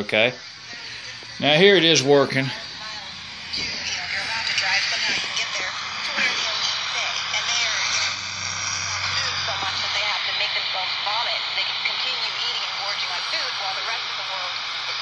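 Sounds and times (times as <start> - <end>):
man talking on radio: 0.0 - 2.7
radio static hiss: 0.0 - 15.0.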